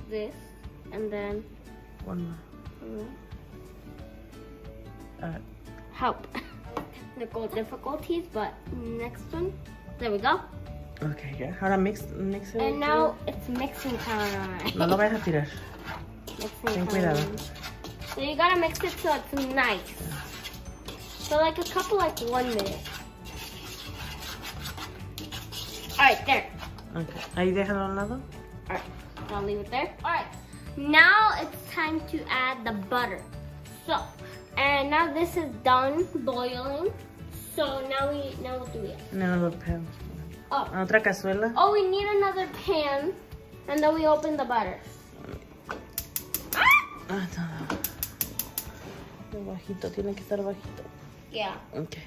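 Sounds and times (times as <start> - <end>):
metal spoon stirring spices in bowl: 13.1 - 30.4, 45.9 - 46.5, 47.8 - 48.8
pet crying: 46.5 - 47.1.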